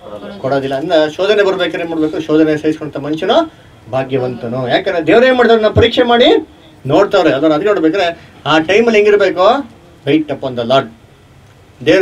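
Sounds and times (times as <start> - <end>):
man preaching: 0.0 - 11.0.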